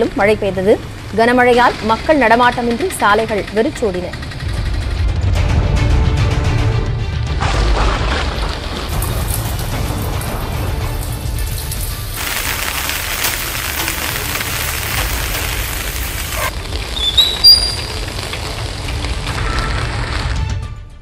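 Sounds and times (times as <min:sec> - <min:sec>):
rain hiss: 0:00.0 - 0:03.3, 0:08.6 - 0:20.6
background music: 0:00.0 - 0:21.0
low rumble: 0:04.1 - 0:20.6
high rising chirps: 0:14.4 - 0:18.1.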